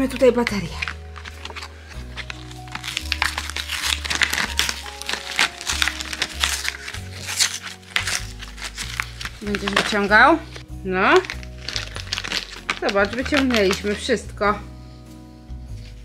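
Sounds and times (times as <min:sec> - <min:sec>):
battery pack backing crinkling and tearing: 0:00.1 - 0:14.1.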